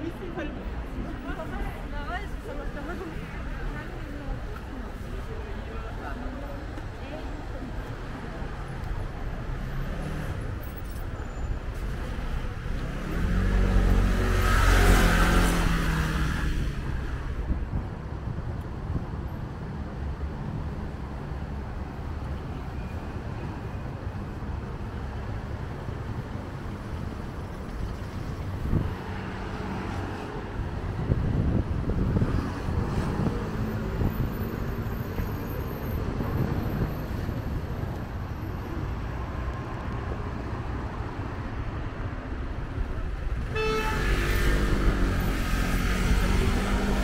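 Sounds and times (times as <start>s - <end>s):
steady traffic noise: 0.0s - 47.0s
vehicle passing close by: 43.8s - 47.0s.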